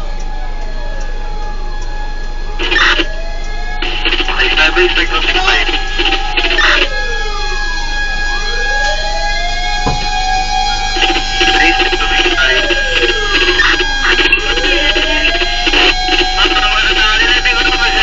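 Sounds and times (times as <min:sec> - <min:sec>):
fire truck siren wailing: 0:00.0 - 0:18.0.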